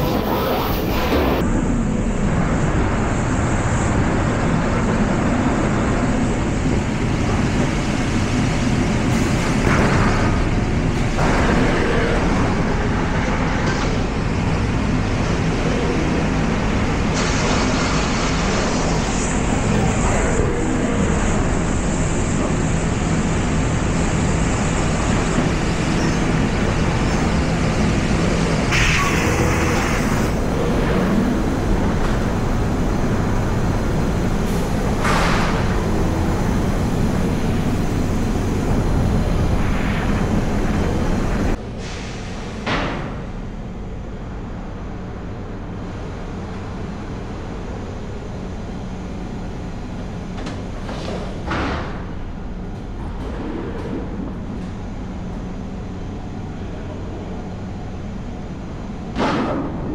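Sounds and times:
laser cutter hissing: 0:00.0 - 0:01.4, 0:14.2 - 0:42.6
laser cutter mechanical hum: 0:00.0 - 0:59.2.

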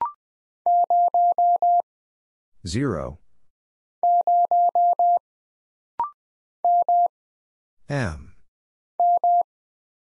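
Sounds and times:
morse code beeps: 0:00.0 - 0:01.8, 0:04.0 - 0:05.2, 0:06.0 - 0:07.1, 0:09.0 - 0:09.5.

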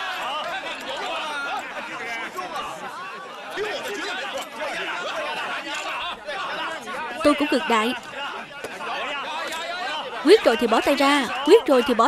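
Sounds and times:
crowd of men talking: 0:00.0 - 0:12.0.

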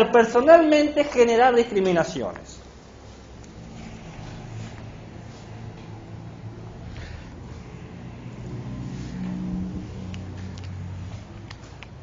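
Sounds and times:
low motor drone: 0:03.3 - 0:11.6.

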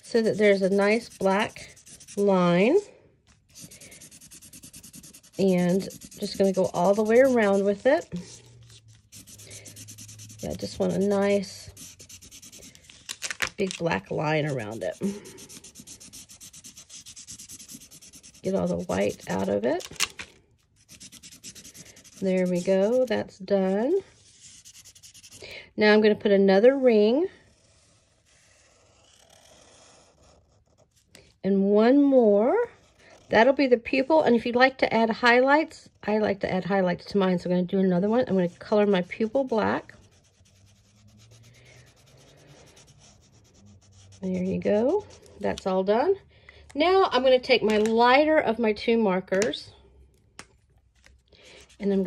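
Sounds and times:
marker scribbling on paper: 0:00.0 - 0:02.5, 0:03.5 - 0:12.8, 0:14.1 - 0:19.6, 0:20.8 - 0:25.4, 0:38.2 - 0:45.3.

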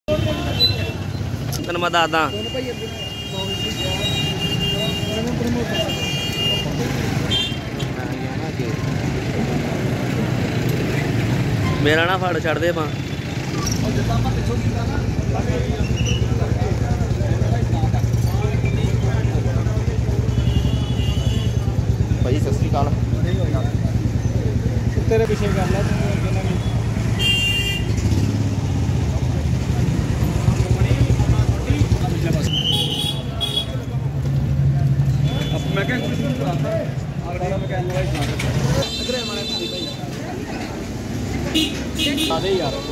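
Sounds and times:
murmur of voices: 0:00.1 - 0:27.2, 0:28.0 - 0:42.9
motor scooters and traffic: 0:00.1 - 0:42.9
vehicle horn tooting: 0:20.3 - 0:21.6, 0:26.6 - 0:28.0.

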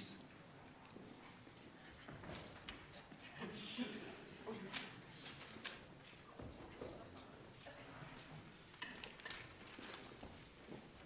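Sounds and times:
footsteps and shuffling on stage: 0:00.3 - 0:03.4, 0:04.6 - 0:11.0.

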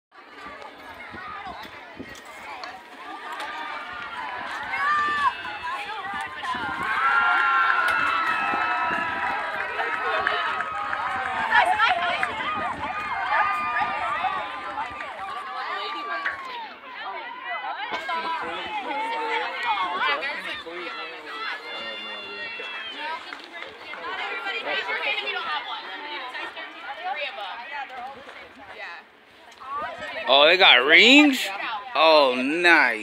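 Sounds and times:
girls talking and calling out: 0:09.7 - 0:21.8, 0:22.6 - 0:30.3, 0:31.0 - 0:32.0.

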